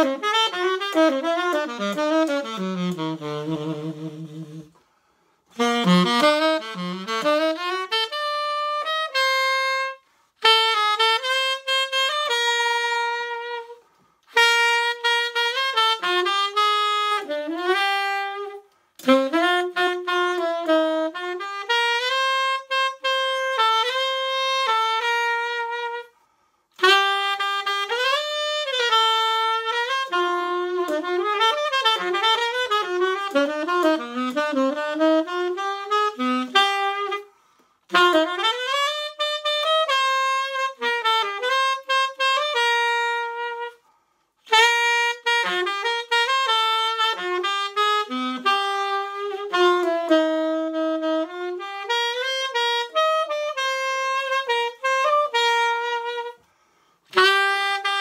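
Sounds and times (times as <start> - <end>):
solo tenor saxophone jazz: 0.0 - 58.0.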